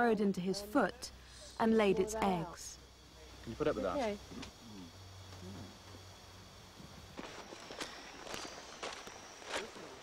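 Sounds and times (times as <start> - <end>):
footsteps crunching through leaves: 7.1 - 10.0.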